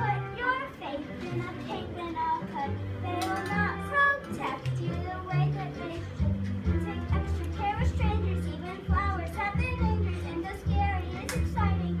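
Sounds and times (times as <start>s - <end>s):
girl singing a show tune: 0.0s - 12.0s
instrumental accompaniment: 0.0s - 12.0s.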